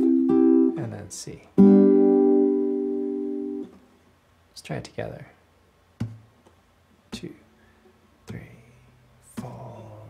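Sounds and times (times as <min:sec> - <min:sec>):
acoustic guitar chord strummed: 0:00.0 - 0:03.8, 0:07.1 - 0:10.0.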